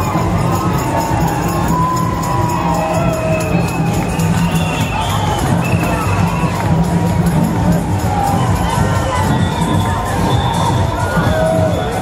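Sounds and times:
crowd cheering and shouting: 0.0s - 12.0s
music with low beat: 0.0s - 12.0s.

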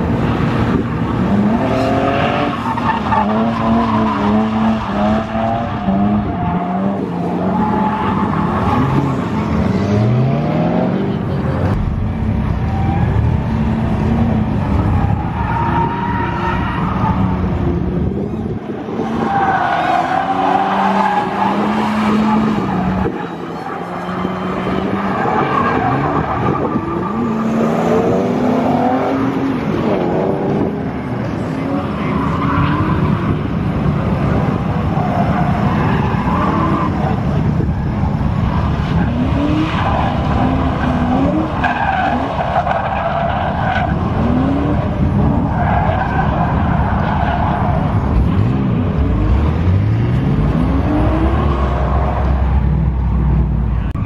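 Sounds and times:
car engine revving: 0.0s - 54.0s
tyres squealing on asphalt: 1.3s - 9.4s, 14.6s - 17.7s, 18.8s - 29.4s, 30.9s - 48.3s, 50.6s - 54.0s.

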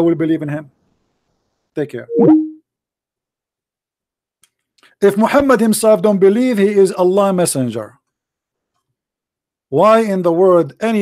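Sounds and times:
electronic call chime: 2.1s - 2.6s.

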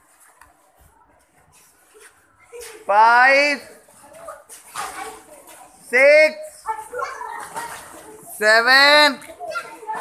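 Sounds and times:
children's voices hubbub: 0.1s - 10.0s.

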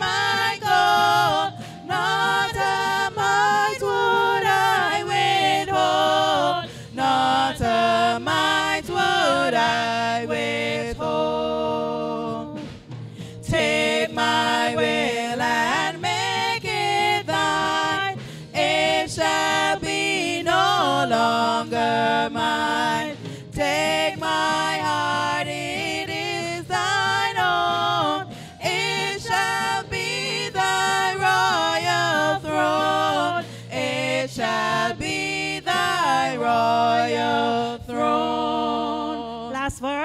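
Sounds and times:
women singing a hymn in harmony: 0.0s - 40.0s.

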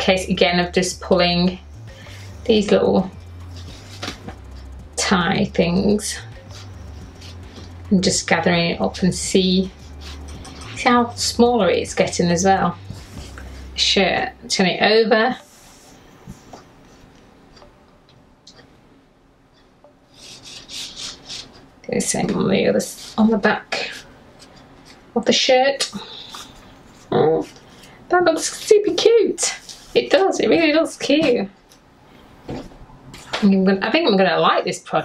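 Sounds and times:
cords rustling through fabric tape: 0.0s - 14.4s, 19.5s - 25.2s, 25.8s - 31.8s
steady low hum: 0.0s - 34.4s
fabric rustling and rubbing: 3.4s - 4.6s, 9.4s - 10.9s, 29.4s - 30.2s.

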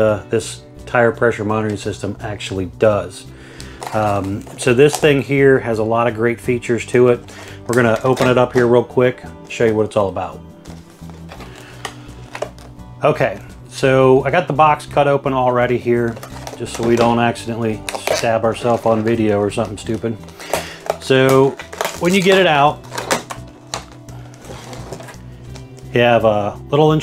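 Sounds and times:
quiet background music: 0.0s - 27.0s
plastic package clicks: 3.6s - 5.2s, 7.3s - 8.7s, 11.0s - 12.8s, 16.1s - 25.9s.

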